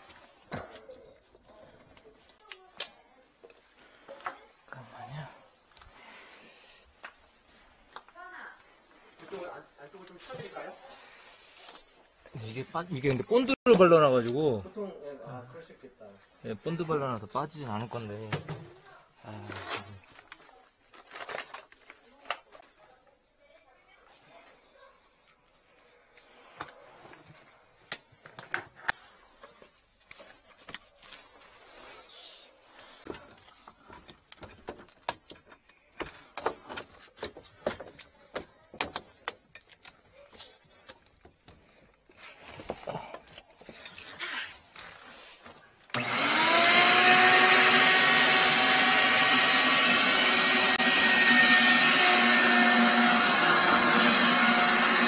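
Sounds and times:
shop vacuum whining motor: 45.9s - 55.0s.

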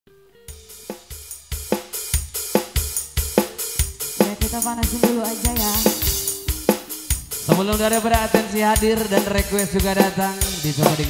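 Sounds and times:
drum beat: 0.5s - 11.0s.

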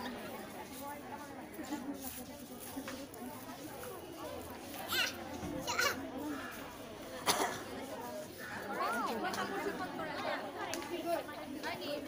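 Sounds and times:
girls chattering: 0.0s - 12.0s.

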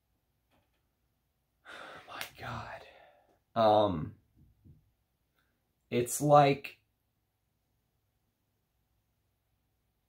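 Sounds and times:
man's sharp intake of breath: 1.6s - 3.2s
man sighing: 1.6s - 3.3s.

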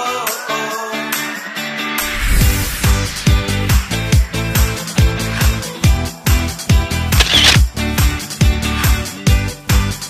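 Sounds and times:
dance-pop music: 0.0s - 7.7s
camera shutter sound effect: 7.1s - 7.7s.

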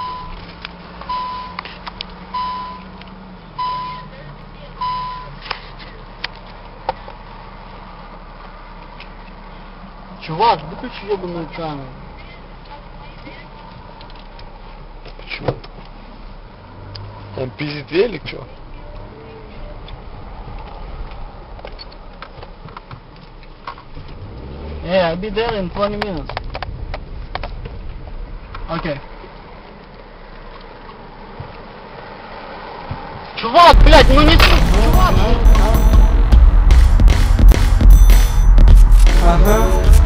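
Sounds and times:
car cabin engine rumble: 33.7s - 40.0s.

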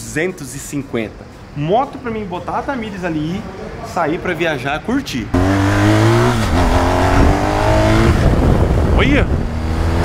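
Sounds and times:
motorcycle engine accelerating: 5.3s - 10.0s
wind noise: 5.6s - 10.0s.

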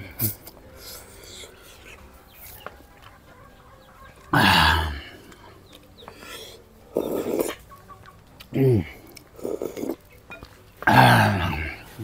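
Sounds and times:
chewing and mouth sounds: 5.2s - 11.2s.

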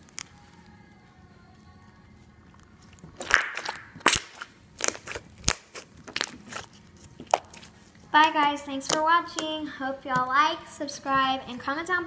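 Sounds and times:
slime squeezed by hand: 2.9s - 7.9s
slime air bubbles popping: 3.2s - 6.4s.

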